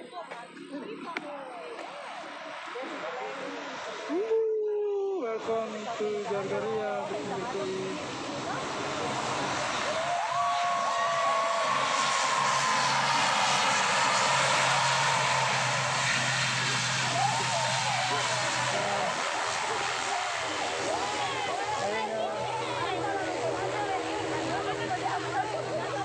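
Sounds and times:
onlookers talking: 0.0s - 26.0s
turboprop engines roaring: 1.4s - 4.2s, 5.3s - 26.0s.

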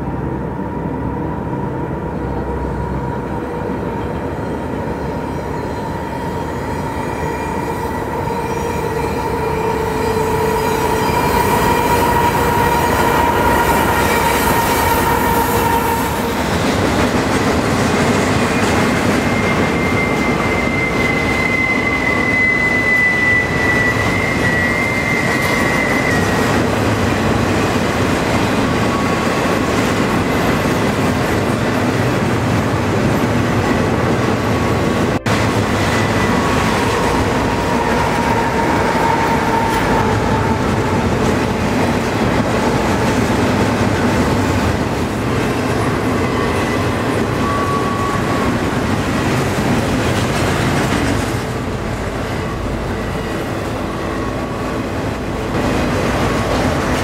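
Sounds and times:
freight train wheels rumbling: 0.0s - 57.0s
wheel flanges squealing: 18.3s - 27.8s, 45.3s - 55.0s.

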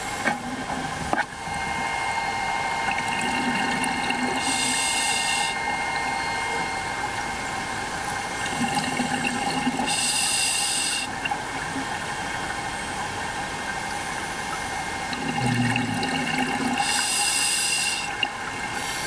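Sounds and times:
steady underwater hum: 0.0s - 19.0s
exhaled bubbles underwater: 0.1s - 19.0s.

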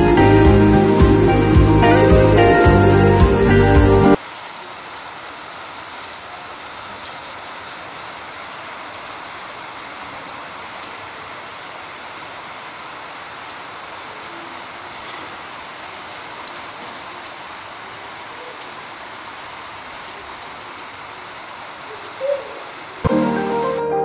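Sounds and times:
steady rain on concrete: 0.0s - 24.0s.

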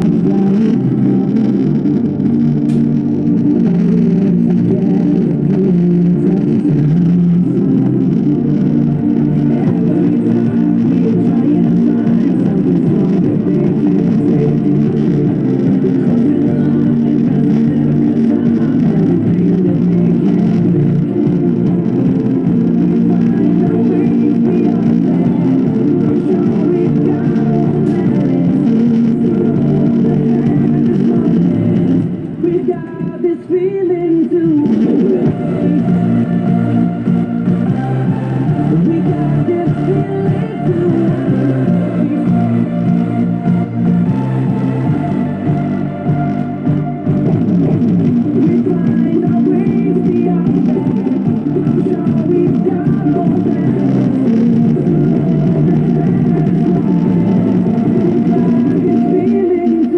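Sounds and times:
loud music through speaker: 0.0s - 59.9s.

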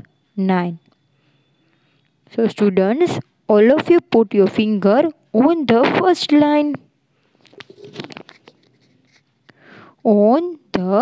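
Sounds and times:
handling scratches and clicks: 7.4s - 9.5s
person speaking: 7.5s - 9.4s
soft intake of breath: 9.4s - 10.0s.

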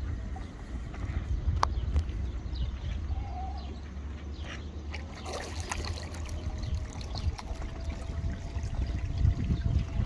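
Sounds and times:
wind buffeting microphone: 0.0s - 3.7s, 5.2s - 10.0s.

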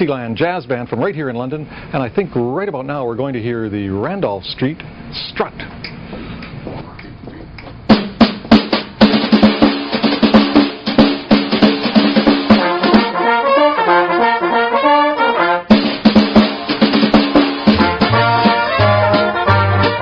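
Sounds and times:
sharp drum hits: 7.8s - 13.2s, 15.7s - 20.0s
jazz band playing: 7.8s - 20.0s
single melody line: 12.6s - 15.8s, 17.6s - 20.0s.

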